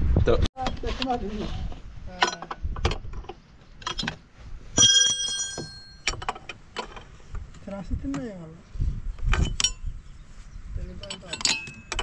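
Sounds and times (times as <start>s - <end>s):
light metal knocks and clicks: 11.0s - 12.0s.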